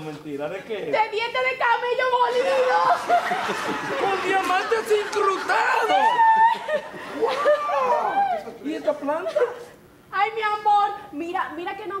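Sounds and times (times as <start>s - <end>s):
long high drawn-out cry: 5.6s - 8.5s
person crying out: 5.6s - 8.6s.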